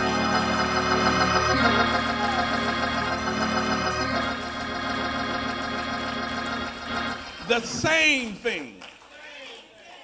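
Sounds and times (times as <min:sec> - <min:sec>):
church organ sustained chord: 0:00.0 - 0:07.9.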